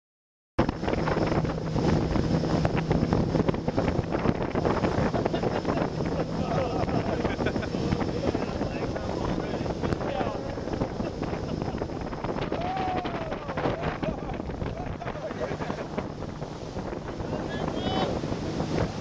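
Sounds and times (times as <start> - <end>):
motorboat engine running: 0.6 - 19.0
water rushing from wake: 0.6 - 19.0
wind buffeting microphone: 0.6 - 19.0.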